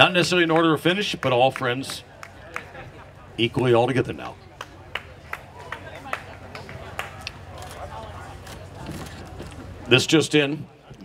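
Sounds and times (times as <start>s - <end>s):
people chatting: 0.0s - 4.9s, 5.6s - 11.0s.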